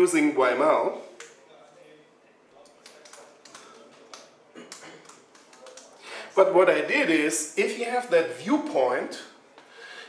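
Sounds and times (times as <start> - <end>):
keyboard typing: 2.6 - 6.0.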